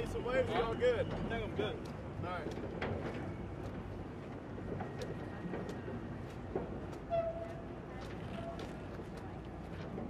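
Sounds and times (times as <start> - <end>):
boat engine rumbling: 0.0 - 10.0.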